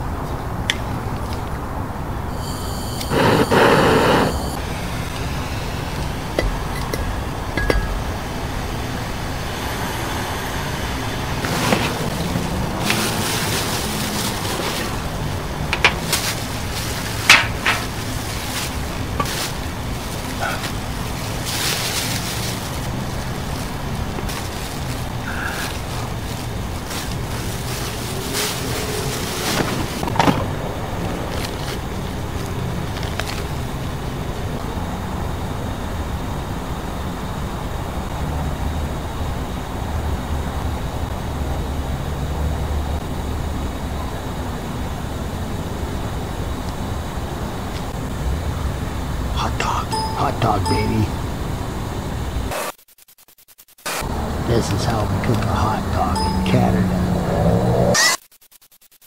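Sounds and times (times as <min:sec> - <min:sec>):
lighter flame hiss: 0:02.3 - 0:08.0
outdoor background rumble: 0:03.1 - 0:49.4
plastic bag rustling: 0:11.4 - 0:30.2.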